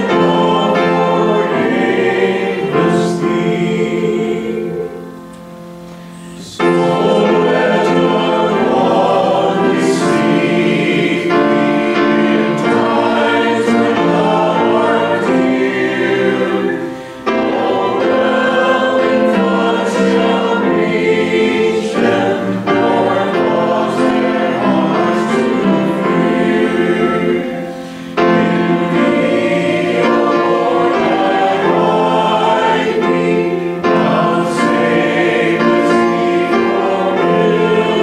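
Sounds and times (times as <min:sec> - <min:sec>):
congregation singing a hymn: 0:00.0 - 0:38.0.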